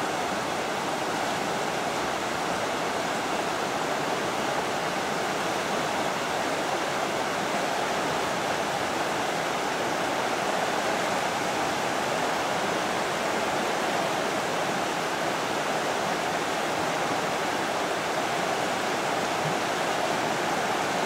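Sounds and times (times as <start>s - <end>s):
river rapids rushing over rocks: 0.0s - 21.0s.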